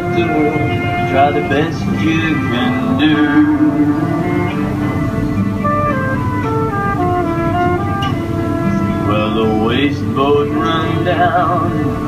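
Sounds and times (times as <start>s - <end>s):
folk band instrumental: 0.0s - 12.0s.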